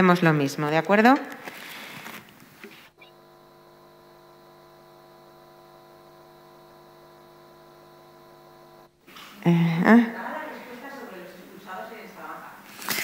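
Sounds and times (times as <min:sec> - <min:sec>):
faint electrical hum: 0:00.0 - 0:13.0.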